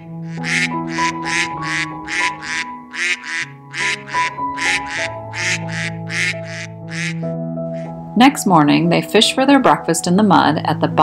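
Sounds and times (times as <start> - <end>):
duck quacking: 0.0 - 7.9
soft background music: 0.0 - 11.0.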